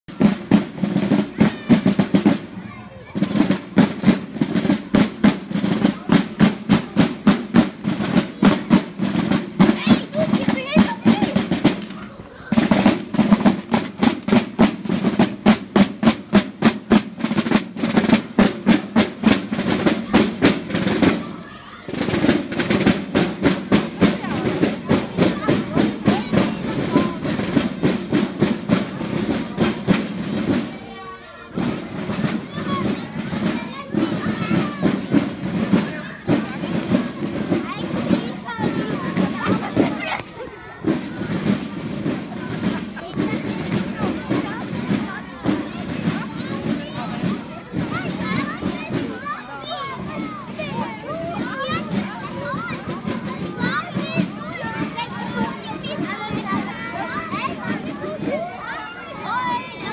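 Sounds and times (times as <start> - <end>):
marching snare drum: 0.0 - 59.9.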